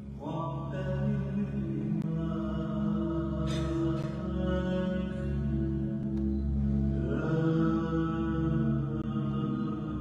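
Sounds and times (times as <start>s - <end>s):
slow live music: 0.0s - 10.0s
steady low drone: 0.0s - 10.0s.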